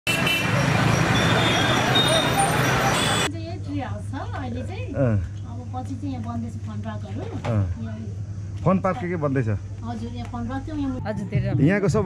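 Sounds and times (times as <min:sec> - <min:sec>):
passing motorbikes and cars: 0:00.1 - 0:03.3
voices: 0:00.4 - 0:08.3.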